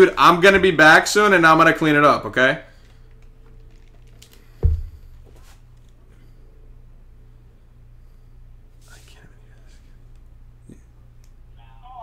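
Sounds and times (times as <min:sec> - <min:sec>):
low steady hum: 0:00.0 - 0:12.0
person whispering: 0:08.8 - 0:09.8.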